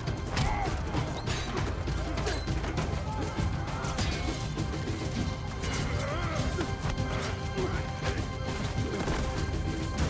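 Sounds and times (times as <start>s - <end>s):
dramatic orchestral score: 0.0s - 10.0s.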